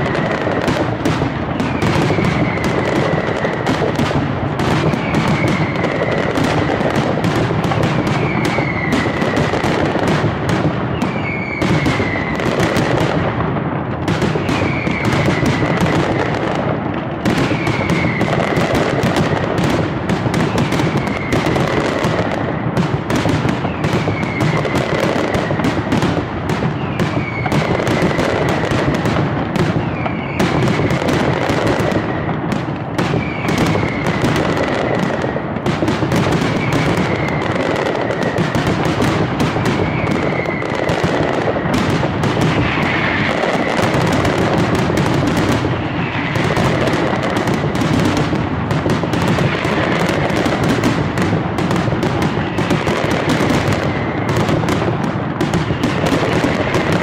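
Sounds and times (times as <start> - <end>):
falling firework whistle: 0.0 - 57.0
fireworks banging in the sky: 0.0 - 57.0.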